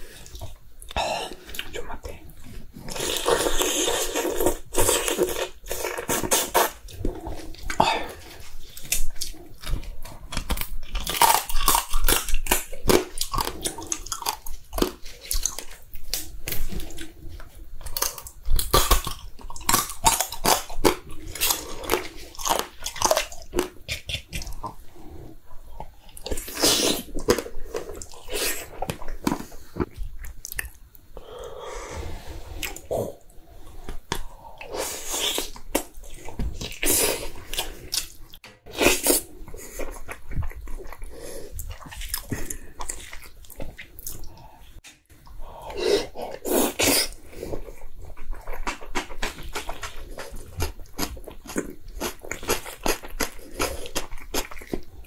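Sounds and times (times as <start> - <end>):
crab shell crunching while chewed: 3.0 - 24.8, 46.4 - 55.0.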